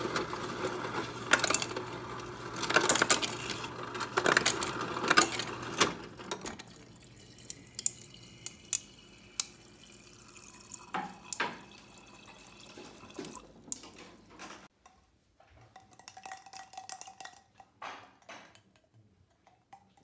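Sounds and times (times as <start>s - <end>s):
ice cubes clattering into glass: 0.0s - 9.2s
water running into glass: 4.5s - 13.6s.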